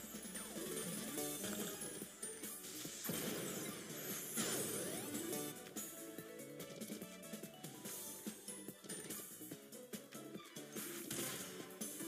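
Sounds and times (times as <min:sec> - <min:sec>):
slot game background music: 0:00.0 - 0:12.0.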